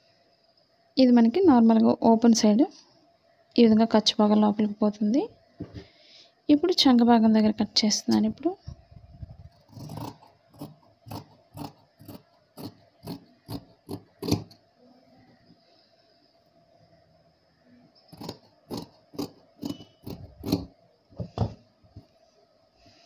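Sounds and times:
scissors snipping cloth: 9.7s - 14.6s, 18.1s - 20.7s.

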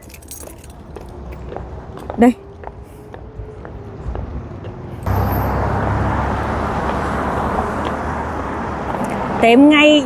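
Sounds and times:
passing cars rushing: 0.8s - 10.0s.

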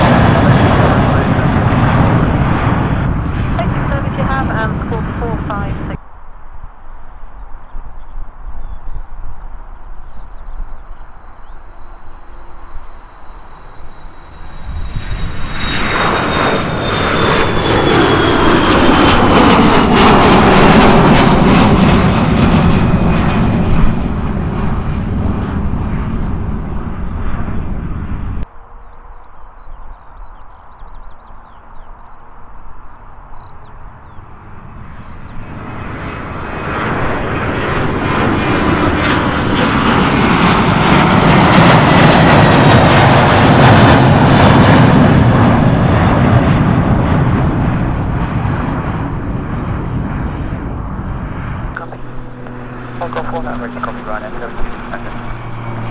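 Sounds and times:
high jet whine falling in pitch: 0.0s - 55.9s
jet engines roaring at take-off: 0.0s - 55.9s.

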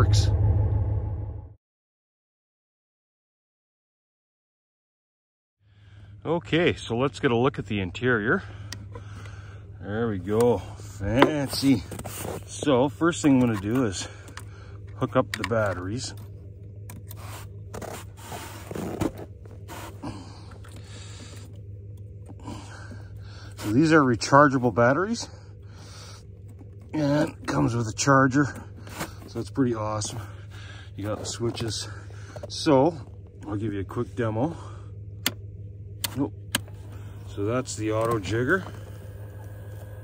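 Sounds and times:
steady low hum: 0.0s - 1.6s, 5.6s - 40.0s.

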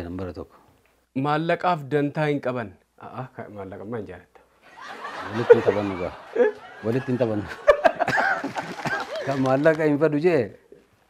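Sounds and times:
people laughing: 4.6s - 9.8s
person speaking: 8.9s - 10.8s.

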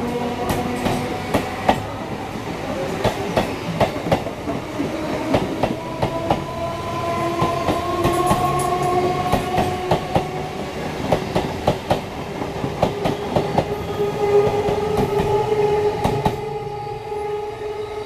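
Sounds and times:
steady train whine: 0.0s - 18.0s.

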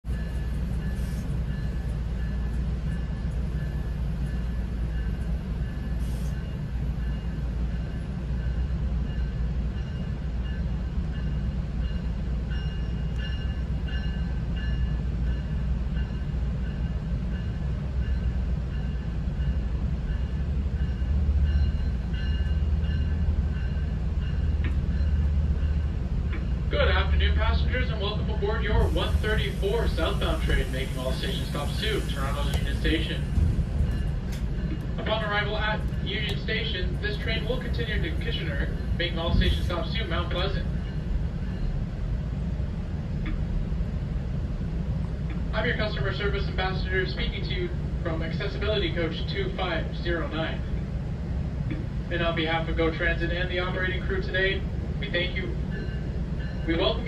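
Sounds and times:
train coach low rumble: 0.0s - 57.0s.

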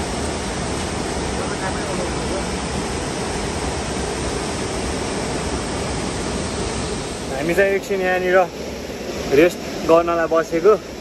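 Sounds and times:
stream rushing over boulders: 0.0s - 11.0s.

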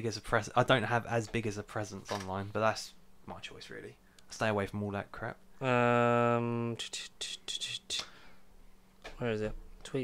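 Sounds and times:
man whispering: 5.6s - 8.1s.

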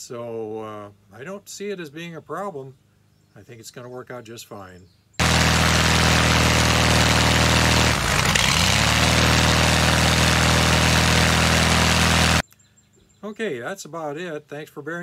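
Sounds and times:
aircraft engine and propeller running: 5.2s - 12.4s.

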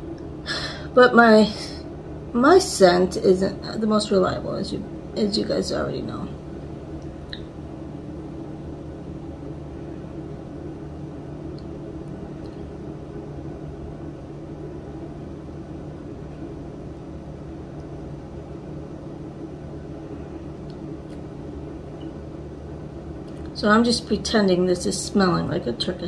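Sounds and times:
low hum and hiss: 0.0s - 26.0s.

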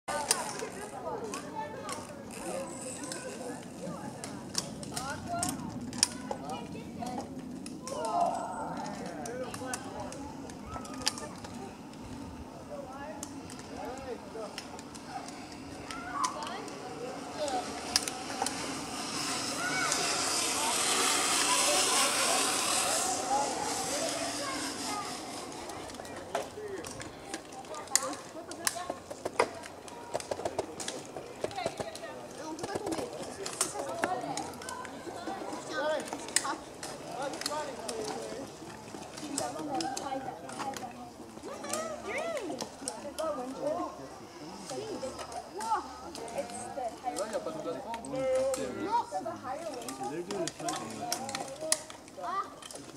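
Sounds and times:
zip-line trolley whirring on cable: 0.1s - 28.9s, 29.5s - 52.9s
distant voices chatting: 0.1s - 52.9s.

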